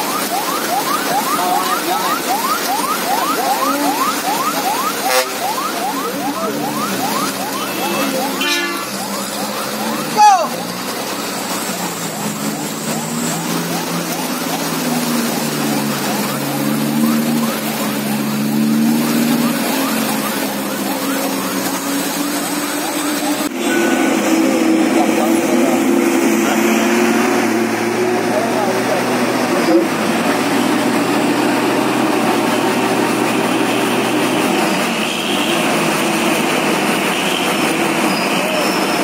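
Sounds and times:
diesel engine drone: 0.0s - 39.0s
diesel truck engines labouring: 0.0s - 39.0s
voices of onlookers: 0.8s - 18.2s.

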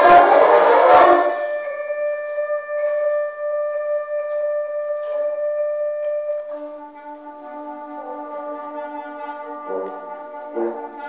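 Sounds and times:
concert band playing: 0.0s - 11.0s.

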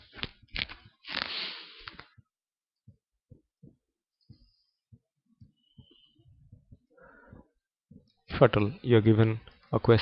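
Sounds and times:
faint low thumps: 2.9s - 8.1s.

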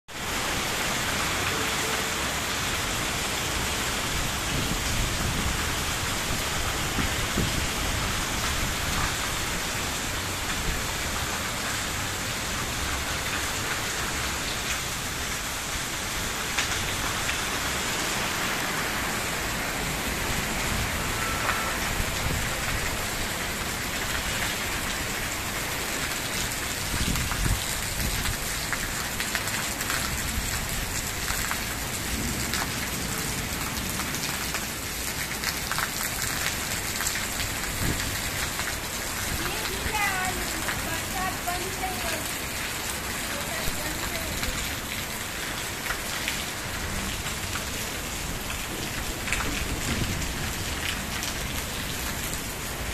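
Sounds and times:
steady rain on terrace and awning: 0.0s - 52.9s.

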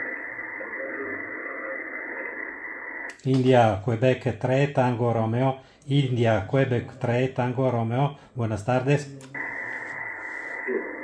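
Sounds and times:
muffled radio receiver hiss: 0.0s - 3.8s, 8.8s - 11.0s.

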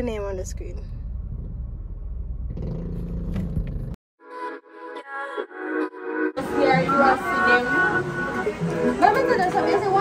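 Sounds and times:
car rumble from inside cabin: 0.0s - 4.0s
music with held tones: 4.2s - 10.0s.

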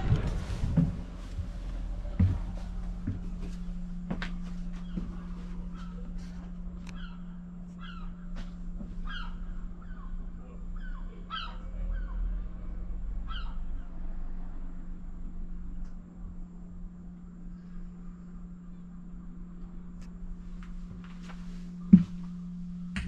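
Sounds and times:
low hum: 0.0s - 23.0s
birds calling: 3.7s - 12.3s, 13.2s - 14.0s.

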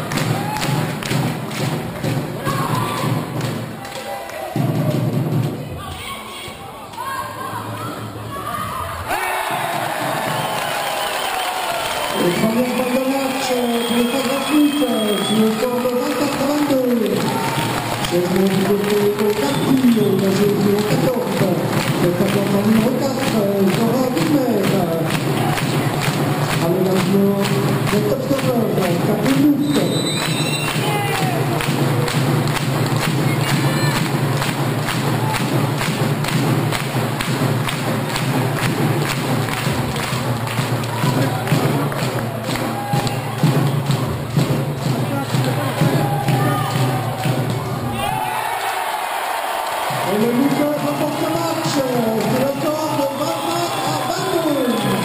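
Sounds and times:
fans thumping rhythmically: 0.0s - 55.0s
crowd shouting and chanting: 2.1s - 32.2s, 40.8s - 55.0s.

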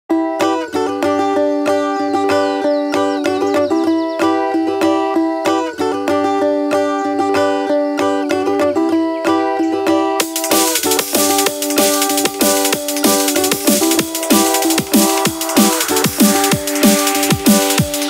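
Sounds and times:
plucked string instrument: 0.1s - 18.0s.

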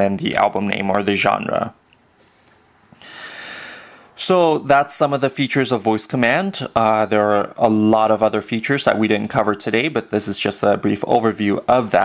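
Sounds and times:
person breathing in: 3.0s - 4.2s.

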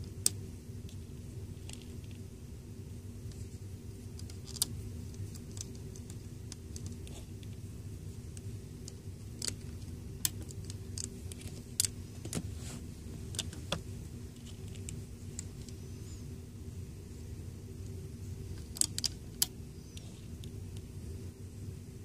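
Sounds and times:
low steady hum: 0.0s - 22.0s.

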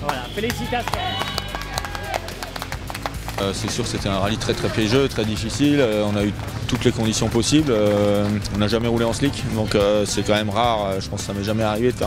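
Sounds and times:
people clapping: 0.0s - 10.8s
background music: 0.0s - 12.0s
voices: 3.4s - 12.0s.

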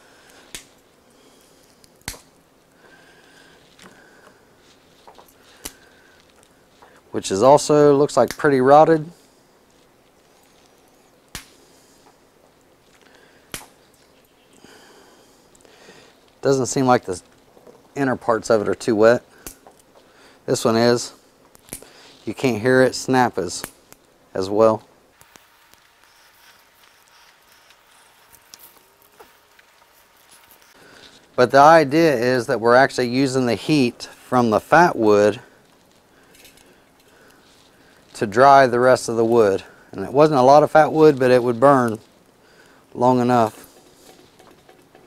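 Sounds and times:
quiet outdoor hiss: 0.0s - 45.0s
small fire crackling: 0.0s - 45.0s
sticks snapping: 0.2s - 0.8s, 1.5s - 2.4s, 3.2s - 7.0s, 11.3s - 11.6s, 12.9s - 14.1s, 19.3s - 20.1s, 21.5s - 22.0s, 23.6s - 24.2s, 25.2s - 26.2s.

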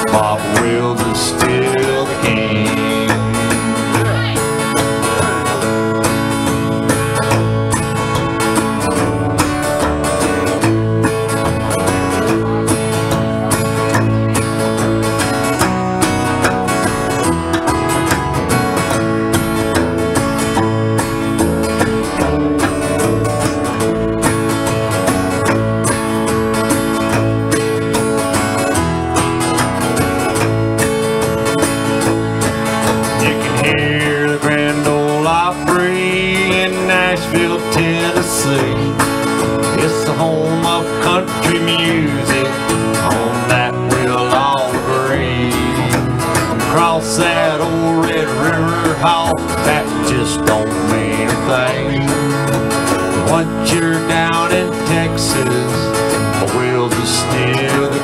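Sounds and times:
acoustic guitar: 0.0s - 58.0s
slapped upright bass: 0.0s - 58.0s.

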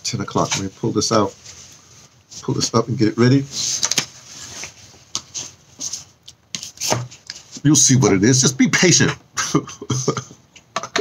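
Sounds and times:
soft rustles: 0.1s - 7.8s.

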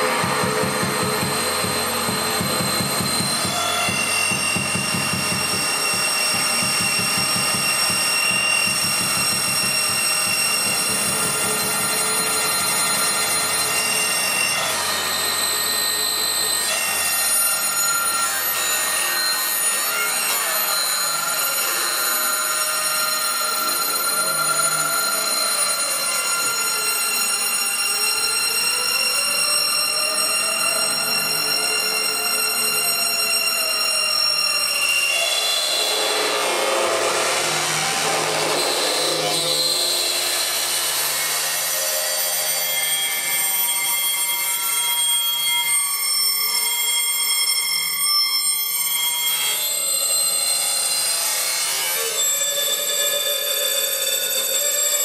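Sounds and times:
slow synth pitch sweeps: 0.0s - 50.6s
sustained high synth tones: 0.0s - 55.0s
low synth drone: 35.8s - 41.2s.

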